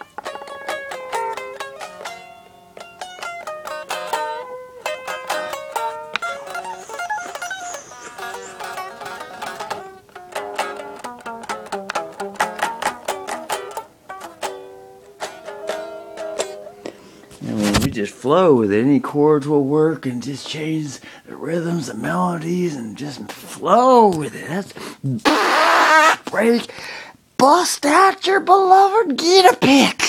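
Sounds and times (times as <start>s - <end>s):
plucked string instrument melody: 0.0s - 18.6s.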